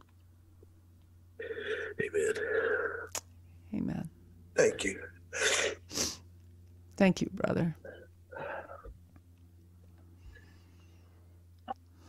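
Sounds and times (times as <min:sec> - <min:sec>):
person breathing tearfully: 0:01.4 - 0:03.1.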